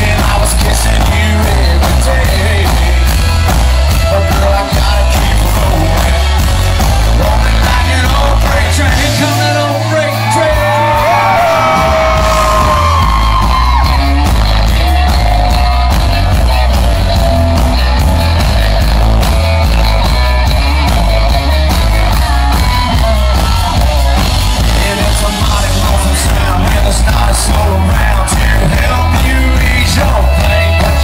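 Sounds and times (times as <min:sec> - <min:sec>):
electric guitar: 0:00.0 - 0:31.0
live country band playing: 0:00.0 - 0:31.0.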